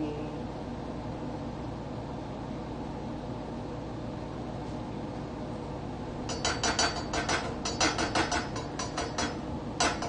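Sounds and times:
utensil clinking against pot: 6.3 - 10.0.

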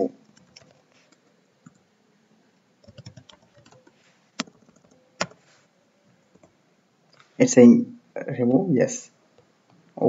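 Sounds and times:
computer keyboard typing: 0.2 - 1.8, 2.8 - 5.4, 6.3 - 6.6.

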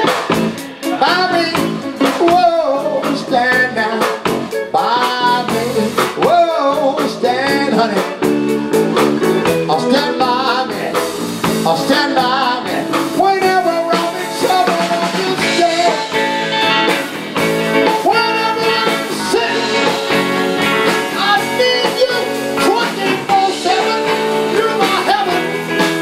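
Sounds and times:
bending lead guitar line: 0.0 - 26.0
blues band playing: 0.0 - 26.0.

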